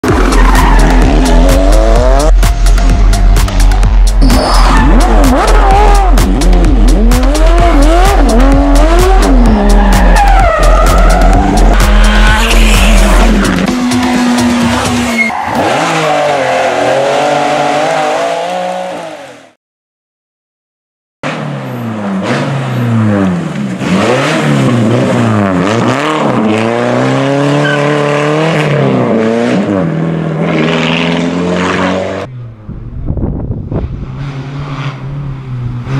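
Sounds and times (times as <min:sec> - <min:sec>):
music with deep bass: 0:00.0 - 0:15.3
rally car engines revving: 0:00.0 - 0:19.5, 0:21.2 - 0:35.9.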